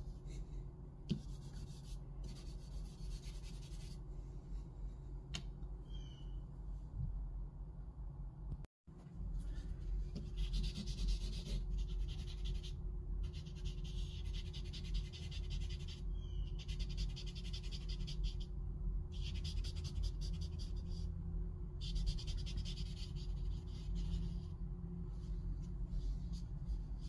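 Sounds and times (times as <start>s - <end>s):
steady low hum: 0.0s - 27.0s
charcoal rubbing on paper: 1.1s - 4.0s, 9.4s - 18.5s, 19.1s - 21.1s, 21.8s - 24.6s.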